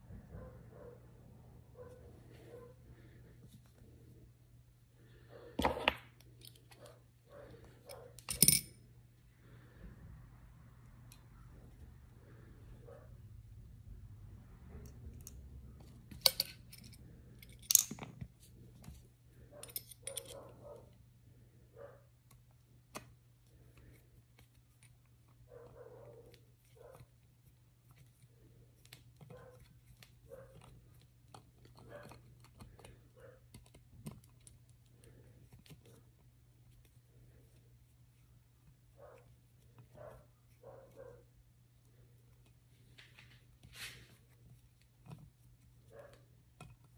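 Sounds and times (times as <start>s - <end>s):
low steady hum: 0.0s - 46.9s
small metal parts clinking: 8.2s - 8.8s, 16.1s - 18.2s, 19.6s - 20.4s.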